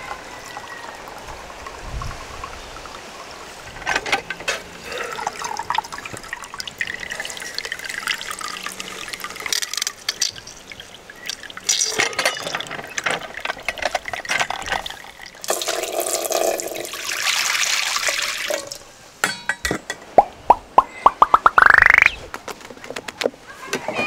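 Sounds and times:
juice trickling into metal cup: 4.9s - 18.8s
juice pouring into pot: 5.1s - 18.8s
ringing taps rising in pitch: 20.2s - 22.2s.

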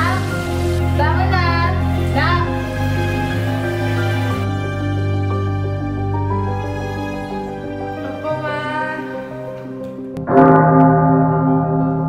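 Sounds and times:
soft background music: 0.0s - 12.0s
deep bell tone: 10.2s - 12.0s.

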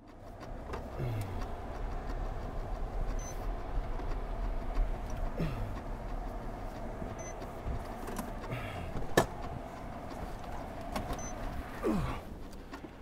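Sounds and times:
car engine running: 0.0s - 13.0s.

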